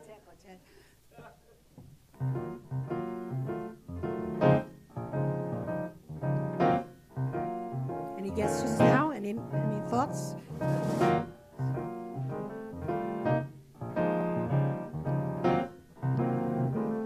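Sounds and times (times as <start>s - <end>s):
swing piano chords: 2.1s - 17.0s.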